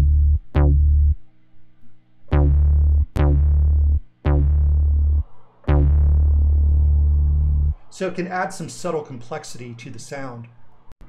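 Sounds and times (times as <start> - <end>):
deep synth bass notes: 0.0 - 1.2, 2.3 - 7.9.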